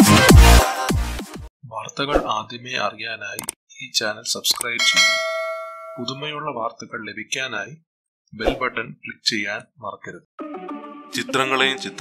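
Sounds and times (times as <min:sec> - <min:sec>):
bright bell chime: 0:04.8 - 0:06.2.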